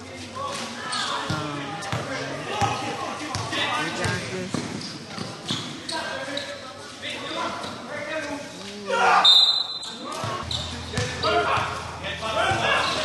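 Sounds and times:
basketball bouncing thuds: 0:01.3 - 0:05.3, 0:10.2 - 0:11.8
people calling out: 0:08.6 - 0:13.0.

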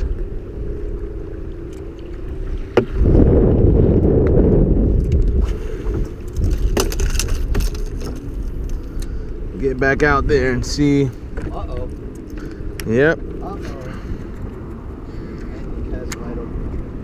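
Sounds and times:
wind and water rumbling: 0:00.0 - 0:17.0.

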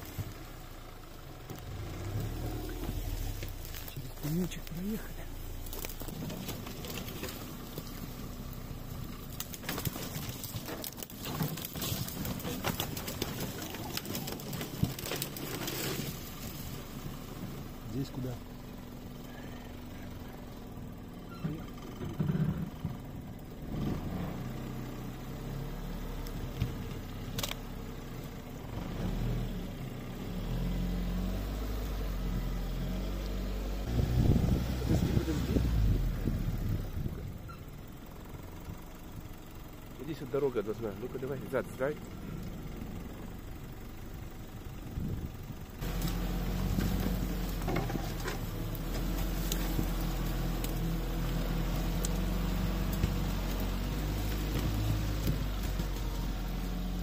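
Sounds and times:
all-terrain vehicle engine: 0:00.0 - 0:57.0
knocks and scrapes from bumps: 0:05.5 - 0:08.3, 0:09.2 - 0:16.8, 0:45.8 - 0:56.8.

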